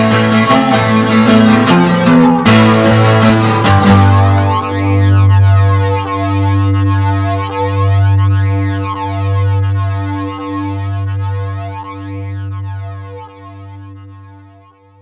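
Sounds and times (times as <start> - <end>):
sweeping synth effect: 0.0 - 14.5
pulsing synthesizer bass note: 0.0 - 15.0.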